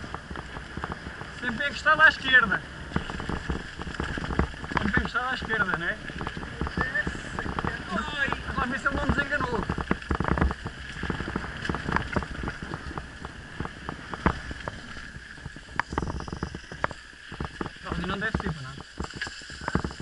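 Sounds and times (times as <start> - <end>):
bike rattling and knocking: 0.0 - 20.0
wind noise on microphone: 0.0 - 20.0.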